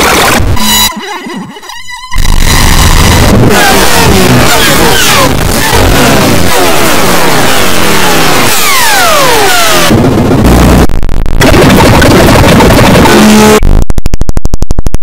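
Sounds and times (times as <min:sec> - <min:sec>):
harsh distorted noise: 0:00.0 - 0:15.0.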